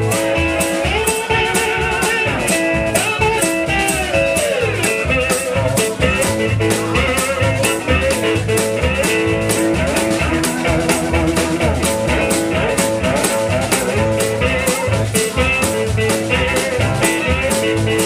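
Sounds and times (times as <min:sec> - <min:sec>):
drum kit beat: 0:00.0 - 0:18.0
guitar with bent notes: 0:00.0 - 0:18.0
upright double bass: 0:00.0 - 0:18.0.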